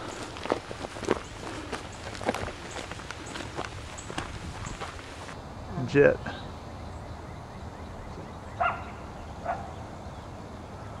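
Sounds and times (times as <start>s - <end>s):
footsteps on gravel: 0.0s - 5.4s.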